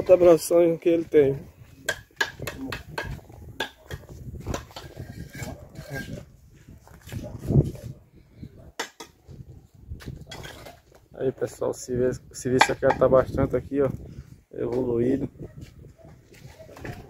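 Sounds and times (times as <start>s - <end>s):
trowel knocking on bricks: 1.8s - 6.0s.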